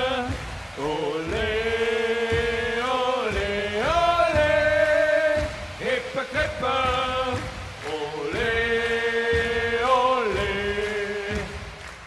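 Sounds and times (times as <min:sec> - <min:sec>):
football fans chanting: 0:00.0 - 0:12.0.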